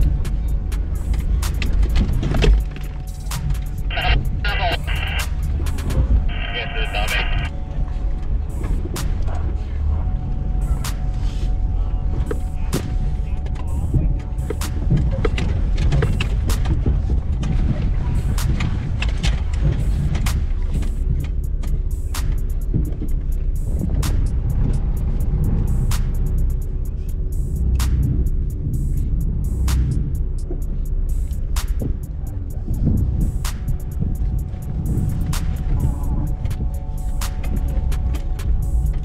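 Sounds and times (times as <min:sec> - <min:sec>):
background music: 0:00.0 - 0:39.0
vehicle engine low rumble: 0:00.0 - 0:39.0
sharp clicks and knocks: 0:01.0 - 0:03.9.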